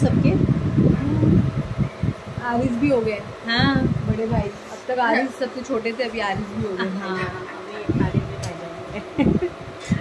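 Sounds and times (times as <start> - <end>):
steady buzzing hum: 0.0 - 10.0
people talking indistinctly: 2.3 - 10.0.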